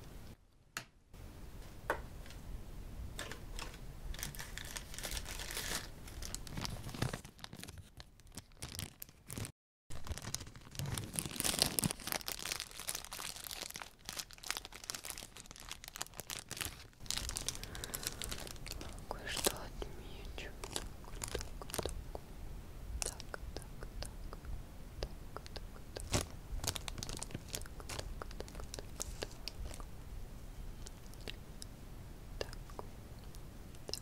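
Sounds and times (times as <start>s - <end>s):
plastic bag crinkling: 3.3s - 22.1s, 25.9s - 29.9s.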